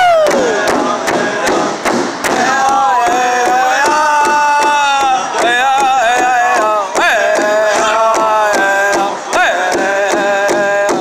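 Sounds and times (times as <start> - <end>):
group singing in high voices: 0.0 - 11.0
large drum beats: 0.0 - 11.0.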